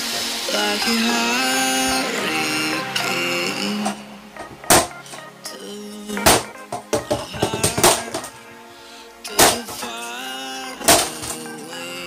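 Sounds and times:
background music: 0.0 - 12.0
laptop being struck: 4.4 - 5.2, 6.2 - 8.4, 9.4 - 10.0, 10.8 - 11.5.

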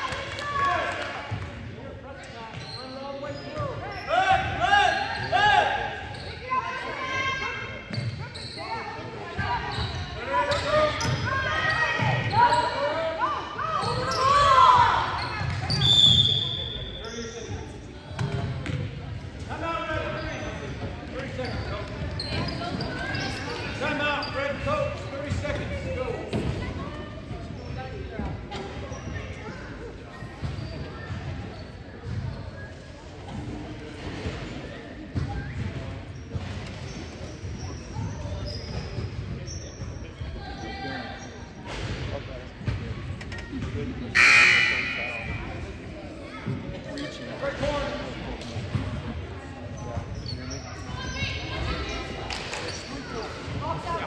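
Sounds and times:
short whistle blast: 44.2 - 45.3.

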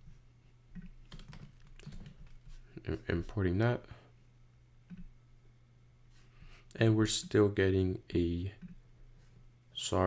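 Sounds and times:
faint low hum: 0.0 - 10.0
computer keyboard keystrokes: 0.8 - 2.4.

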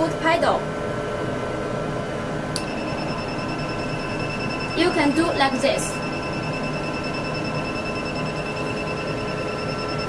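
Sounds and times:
low steady hum: 0.0 - 10.0
high-pitched machine beep: 2.6 - 10.0.

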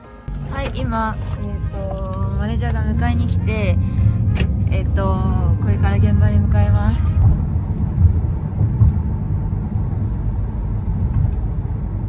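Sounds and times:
car engine and road noise rumble: 0.0 - 12.0.

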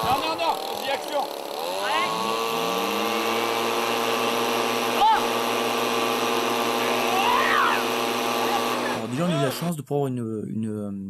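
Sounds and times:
motor running: 0.0 - 9.7
person crying out: 1.8 - 2.3, 7.0 - 7.9.

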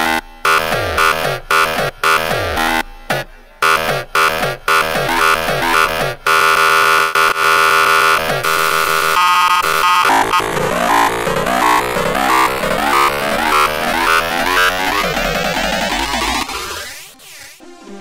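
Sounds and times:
extratone electronic music: 0.0 - 18.0.

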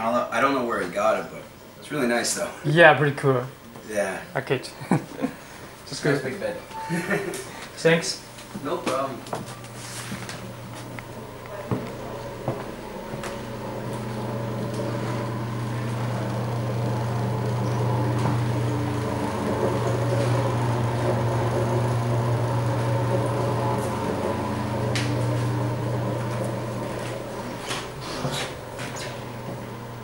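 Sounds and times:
ventilation fan humming: 0.0 - 30.0.

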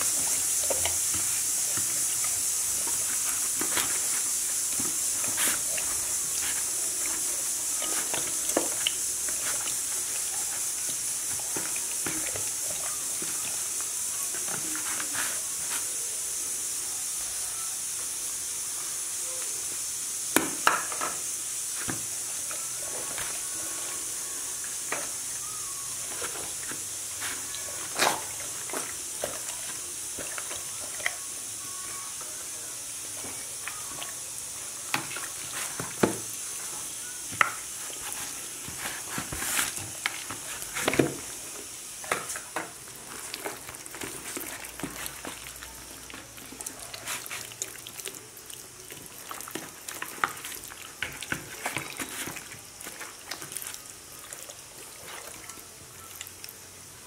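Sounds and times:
wet hand rubbing noises: 0.0 - 16.2
steady high hiss: 0.0 - 57.0.

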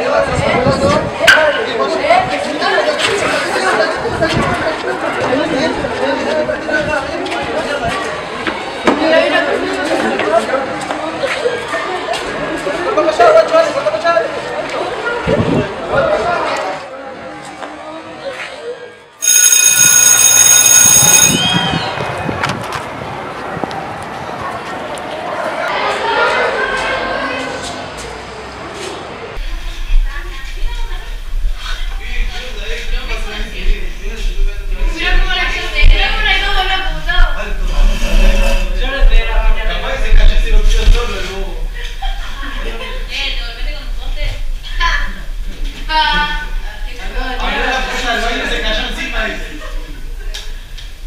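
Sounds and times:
boys talking and shouting: 0.0 - 19.1, 21.4 - 29.4, 30.0 - 37.9
students chattering: 0.0 - 51.0.

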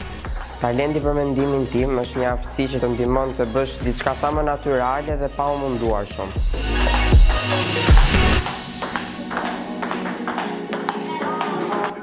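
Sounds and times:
table tennis ball hits: 0.0 - 1.5, 6.9 - 12.0
background music: 0.0 - 12.0.

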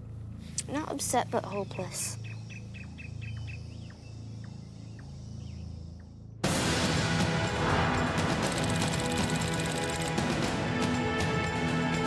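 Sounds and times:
birds chirping: 0.4 - 6.3.

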